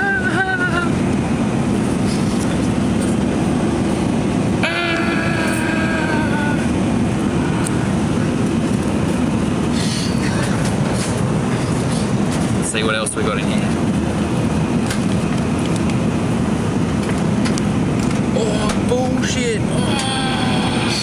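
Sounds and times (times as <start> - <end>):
airliner engines droning: 0.0 - 21.0.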